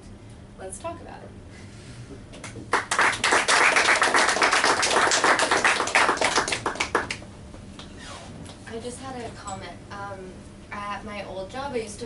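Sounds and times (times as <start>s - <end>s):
audience applauding: 2.7s - 7.2s.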